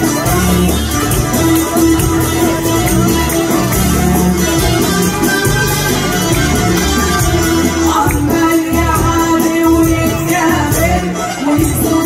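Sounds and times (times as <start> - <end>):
orchestra playing: 0.0 - 9.1
bass line: 0.0 - 12.0
keyboards: 0.0 - 12.0
steady percussion beat: 0.0 - 12.0.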